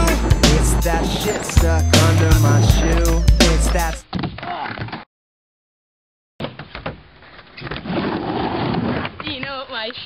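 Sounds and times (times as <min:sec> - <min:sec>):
skateboard wheels rolling on wood: 0:00.0 - 0:04.0, 0:07.1 - 0:10.0.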